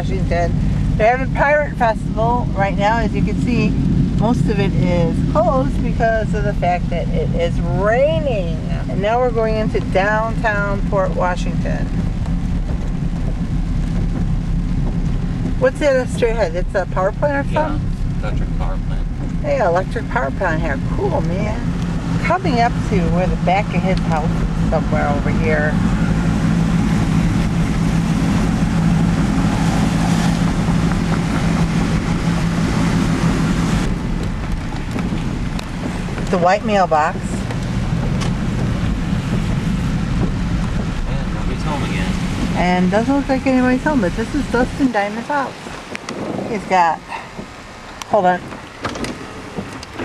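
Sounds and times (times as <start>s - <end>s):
car engine and tyres rumbling: 0.0s - 50.0s
tyres hissing on wet road: 40.9s - 46.0s.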